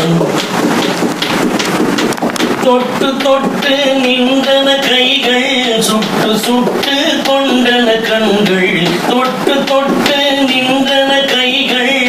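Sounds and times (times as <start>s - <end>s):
hand clapping: 0.0s - 12.0s.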